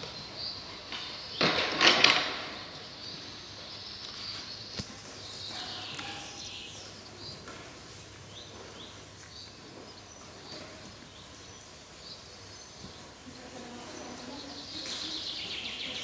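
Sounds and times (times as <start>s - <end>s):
small birds chirping: 0.0s - 16.0s
murmur of voices: 12.9s - 16.0s.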